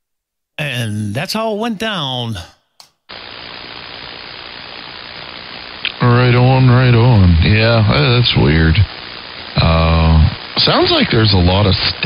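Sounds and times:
radio receiver static hiss: 3.1 - 12.0.

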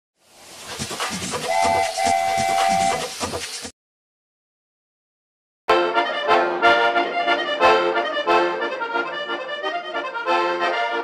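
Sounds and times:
steam train chugging: 0.3 - 3.7
steam train whistle: 1.4 - 3.2.

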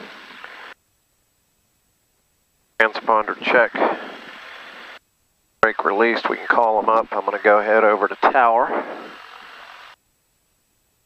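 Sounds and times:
intercom microphone hiss: 0.0 - 11.0.

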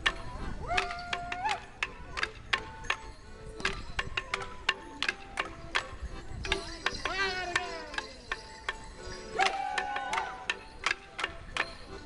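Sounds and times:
wooden sticks clacking: 0.0 - 12.0
high wavering yell: 0.4 - 1.8, 9.2 - 10.6.

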